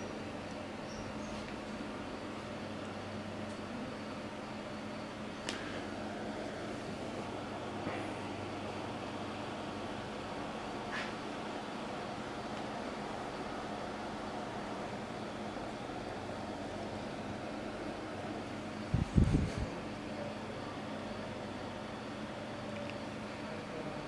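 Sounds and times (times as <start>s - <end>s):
low electrical hum: 0.0s - 24.0s.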